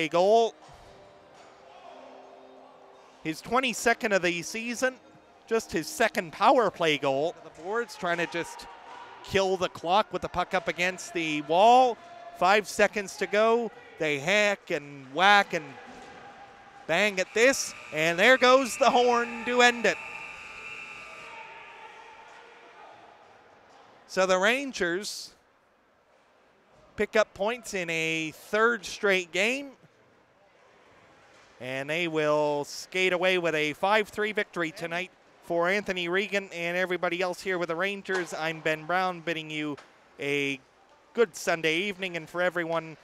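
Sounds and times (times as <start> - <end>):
distant music with held notes: 0.0 - 22.6
low crowd noise: 0.0 - 43.0
arena horn echoing: 16.9 - 21.6.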